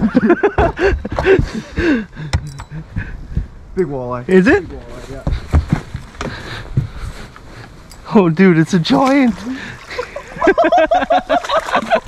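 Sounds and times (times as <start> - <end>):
low thumps and knocks on deck: 0.4 - 3.6, 4.5 - 7.0.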